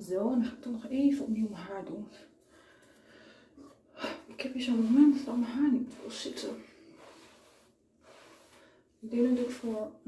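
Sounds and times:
soft breath: 2.4 - 4.3, 6.7 - 9.0.

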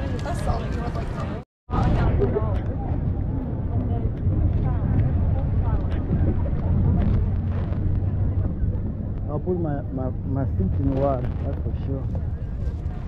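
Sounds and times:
people chattering faintly: 0.0 - 13.0
wind rumbling on microphone: 0.0 - 13.0.

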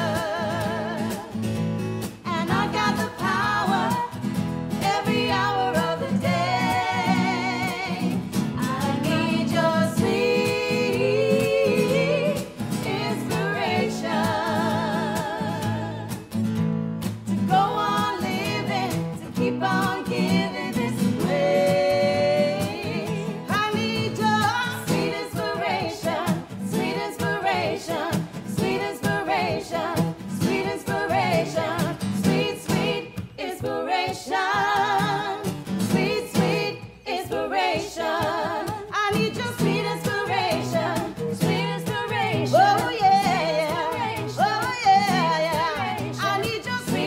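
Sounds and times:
voices singing together: 0.0 - 16.2, 17.5 - 47.0
strummed acoustic guitars: 0.0 - 47.0.

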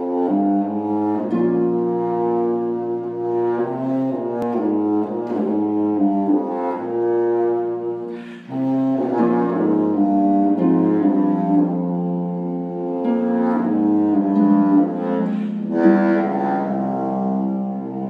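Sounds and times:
contrabassoon playing low melody: 0.0 - 18.0
harp accompaniment: 0.0 - 18.0.

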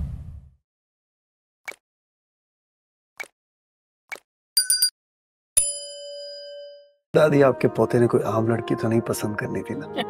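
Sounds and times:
notification bell ding: 4.6 - 4.9.

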